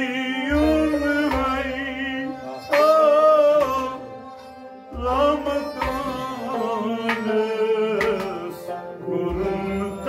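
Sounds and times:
man singing: 0.0 - 4.2, 4.9 - 10.0
bowed sarangi: 0.0 - 10.0
harmonium drone: 0.0 - 10.0.

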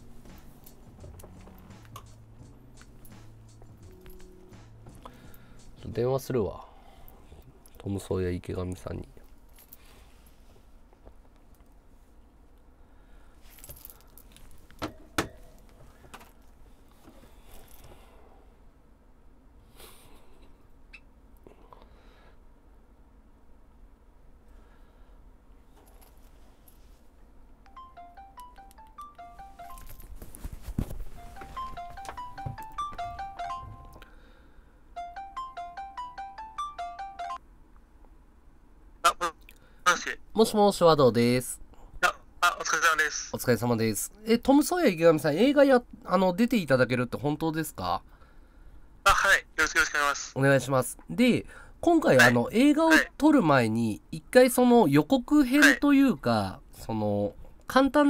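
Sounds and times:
low room noise: 0.0 - 58.0
electronic phone ringtone: 27.7 - 30.1, 31.1 - 34.0, 35.0 - 37.4.

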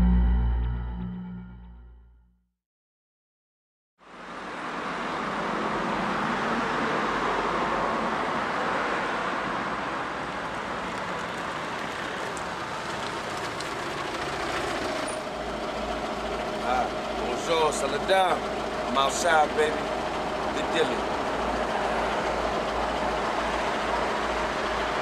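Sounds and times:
cars passing on a street: 4.0 - 25.0.

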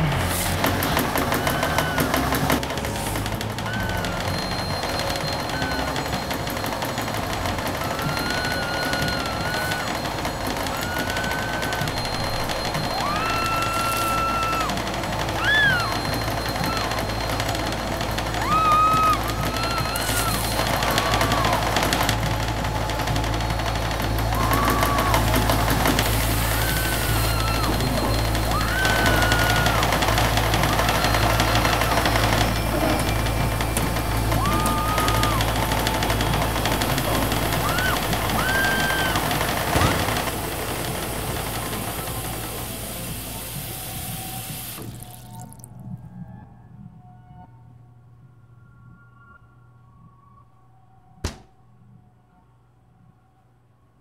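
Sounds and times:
washing machine rumbling: 0.0 - 45.9
eerie gliding high tones: 0.0 - 47.6.

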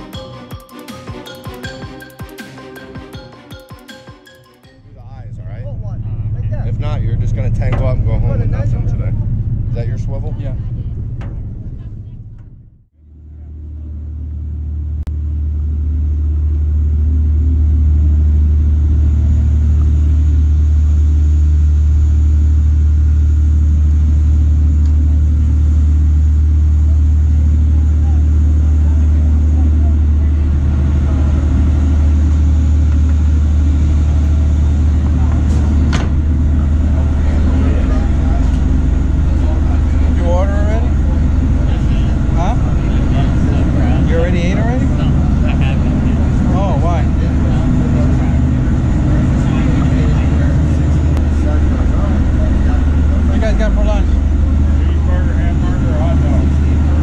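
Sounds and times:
boat engines droning: 0.0 - 57.0
voices talking: 4.7 - 12.4, 26.8 - 57.0.

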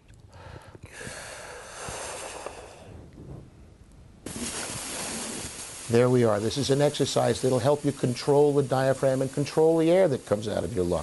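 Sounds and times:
person blowing breath at paper: 0.4 - 3.0.

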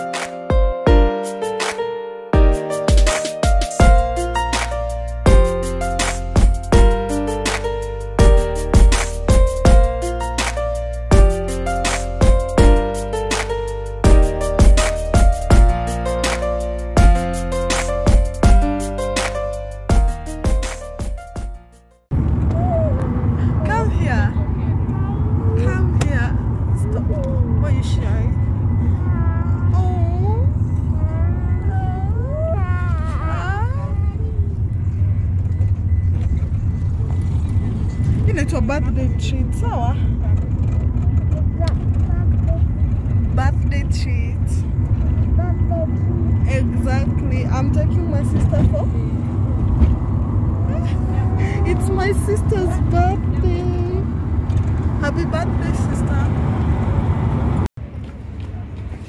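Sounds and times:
car road rumble: 22.1 - 59.0.

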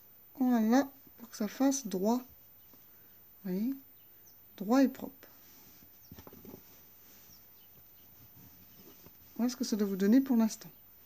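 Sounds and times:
soft handling clicks and rustles: 5.4 - 9.4.

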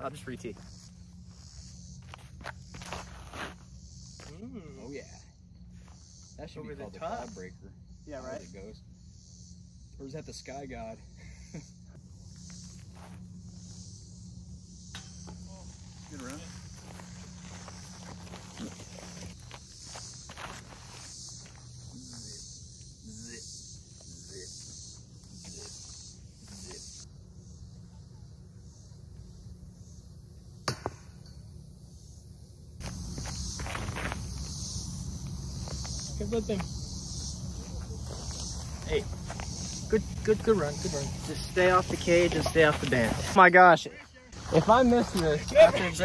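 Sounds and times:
insects chirping: 0.0 - 46.0.

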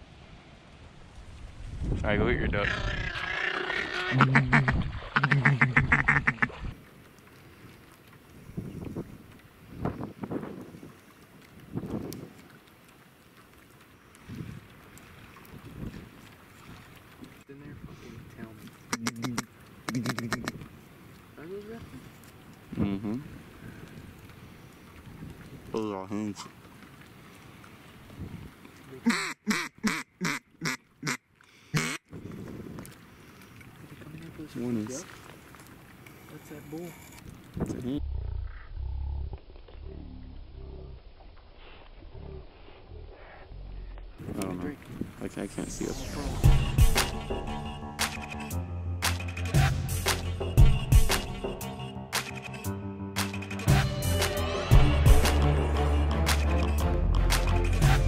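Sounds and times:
duck quacking: 2.6 - 6.5, 18.9 - 20.6, 29.0 - 32.0
footsteps wading through water: 3.9 - 18.9, 19.5 - 25.8, 26.4 - 29.0, 32.1 - 37.6.

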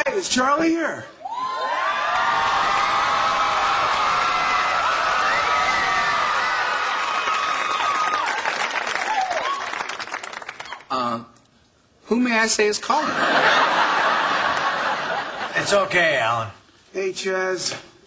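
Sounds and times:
audience applauding and cheering: 1.2 - 10.9.

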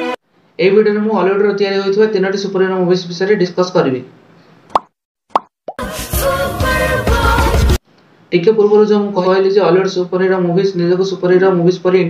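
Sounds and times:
loud background music: 5.8 - 7.8.

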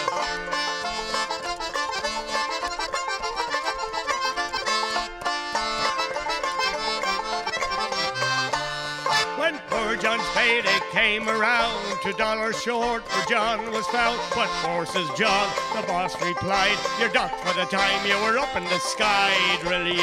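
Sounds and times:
banjo picking: 0.0 - 20.0
button accordion playing: 0.0 - 20.0
person singing: 9.2 - 20.0.

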